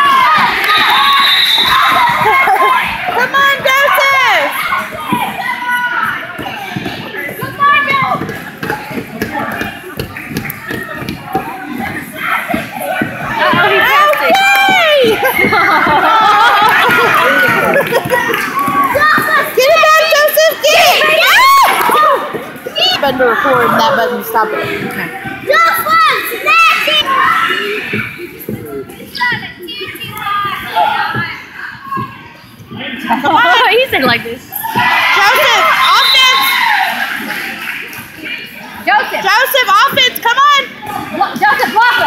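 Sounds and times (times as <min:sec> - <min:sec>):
children shouting and chattering: 0:00.0 - 0:42.0
spectators' voices: 0:00.0 - 0:42.0
feet tapping on gym court: 0:05.0 - 0:19.8
basketball bouncing: 0:06.3 - 0:11.6.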